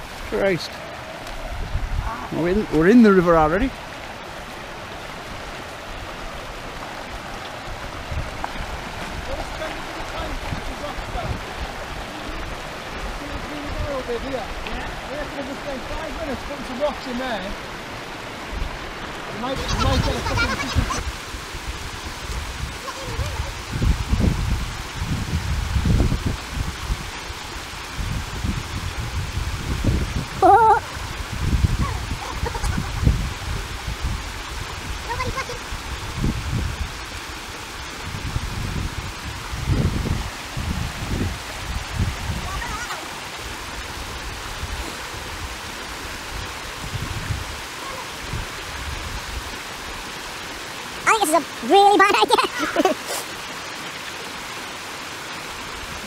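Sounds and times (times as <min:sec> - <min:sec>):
wind buffeting microphone: 0:00.0 - 0:50.2
river rushing over rocks: 0:00.0 - 0:56.0
short vocal cry: 0:30.4 - 0:30.9.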